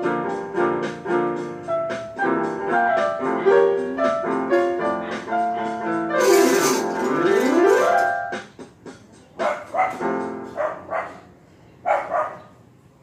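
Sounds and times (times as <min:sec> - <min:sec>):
electronic keyboard run: 0:06.2 - 0:08.3
dog barking: 0:09.4 - 0:12.6.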